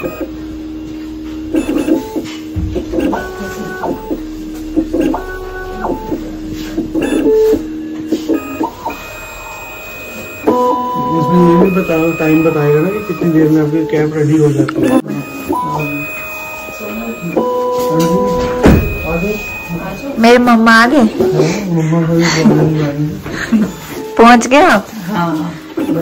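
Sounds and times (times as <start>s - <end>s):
milling machine motors whining: 0.0s - 26.0s.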